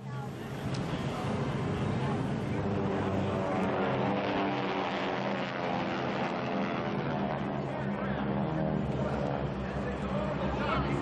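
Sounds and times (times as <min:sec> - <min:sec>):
crowd noise: 0:00.0 - 0:11.0
propeller aircraft engine drone: 0:00.0 - 0:11.0.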